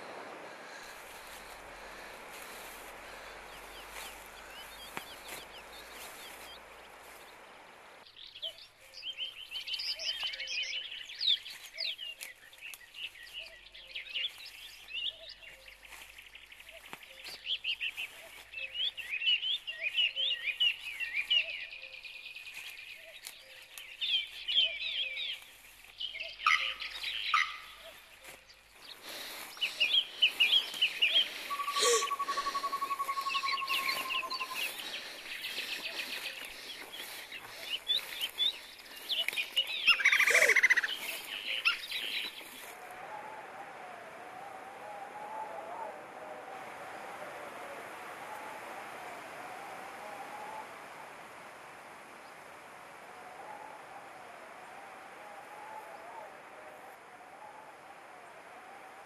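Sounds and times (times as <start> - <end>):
birds chirping and singing: 0.7 - 7.5, 8.1 - 45.9.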